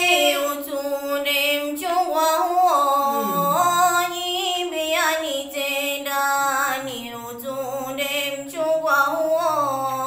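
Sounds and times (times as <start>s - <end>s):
woman singing slow melody: 0.0s - 10.0s.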